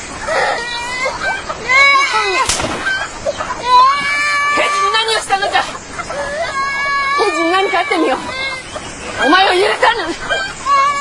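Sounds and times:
high-pitched voice crying: 0:00.2 - 0:02.5, 0:06.1 - 0:11.0.

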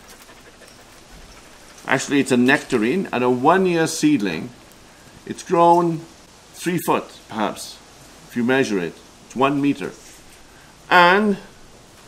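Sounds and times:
faint steady hiss: 0:00.0 - 0:12.0
man talking: 0:01.8 - 0:04.6, 0:05.2 - 0:10.0, 0:10.9 - 0:11.6.

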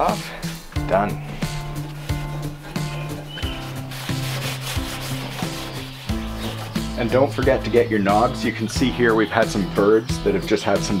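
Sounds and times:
guitar music: 0:00.0 - 0:09.8
scouring pad scrubbing steel: 0:01.5 - 0:07.8.

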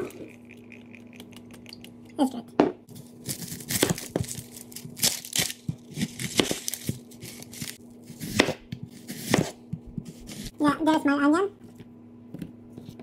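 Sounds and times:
onion skin tearing: 0:03.0 - 0:09.4
knife cutting onion on board: 0:03.0 - 0:10.8.

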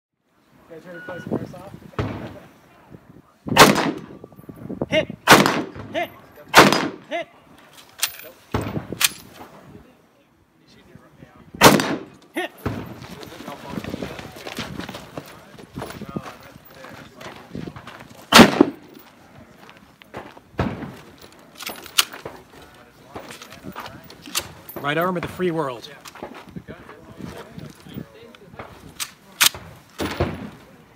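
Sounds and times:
rifle shots: 0:03.5 - 0:04.2, 0:05.3 - 0:05.9, 0:06.5 - 0:07.1, 0:11.6 - 0:13.0, 0:18.3 - 0:18.9
movement noise: 0:12.0 - 0:30.9.

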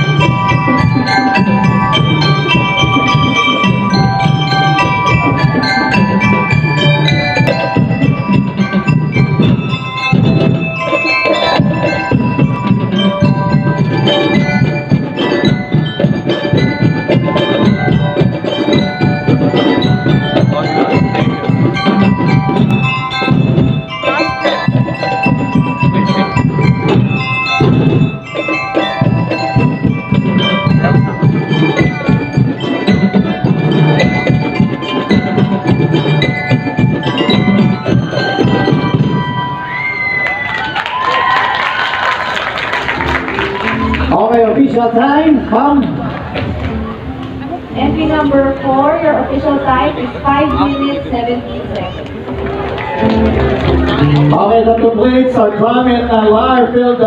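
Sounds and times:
bell lyres melody: 0:00.0 - 0:57.0
drums: 0:00.0 - 0:57.0.

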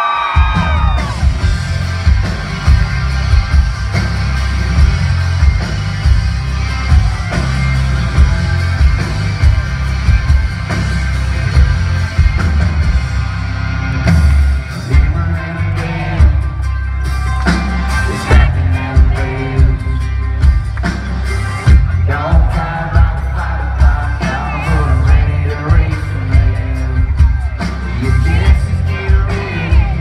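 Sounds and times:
crowd whooping: 0:00.0 - 0:13.9, 0:17.0 - 0:20.2
live country band playing: 0:00.3 - 0:30.0.

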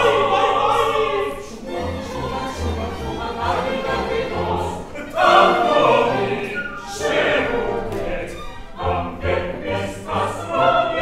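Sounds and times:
operatic voices singing together: 0:00.0 - 0:11.0.

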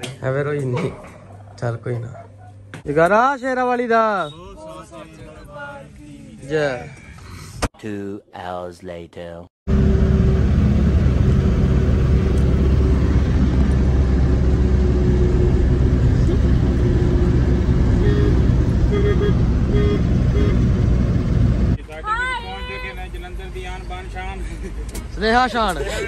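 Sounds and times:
van engine and road noise: 0:09.7 - 0:26.0.

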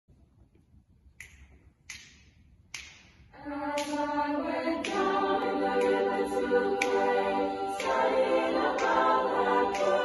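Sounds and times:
finger snaps: 0:01.2 - 0:04.1, 0:06.8 - 0:08.2.

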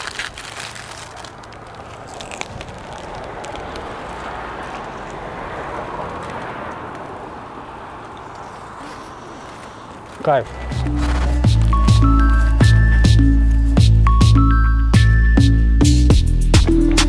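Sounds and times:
outdoor street noise: 0:00.0 - 0:17.0.

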